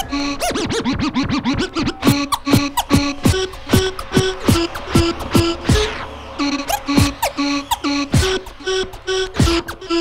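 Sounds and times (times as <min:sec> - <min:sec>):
music beat: 0:00.0 - 0:10.0
turntable scratching vinyl: 0:00.0 - 0:10.0.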